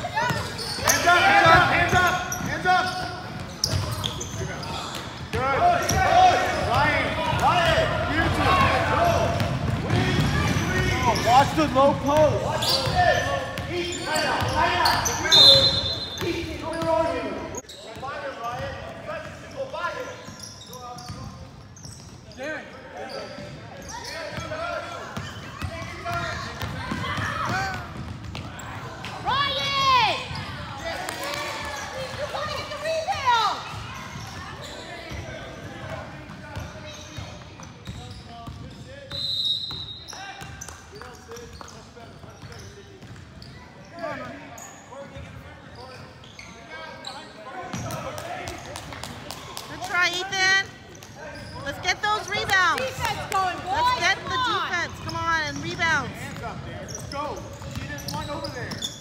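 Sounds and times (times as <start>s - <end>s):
sneakers squeaking on court: 0.0s - 48.7s, 49.8s - 59.0s.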